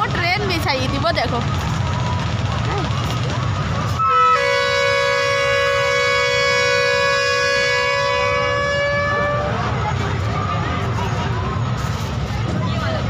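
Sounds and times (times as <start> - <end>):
short high horn toot: 4.0 - 9.5
horn blast: 4.0 - 9.8.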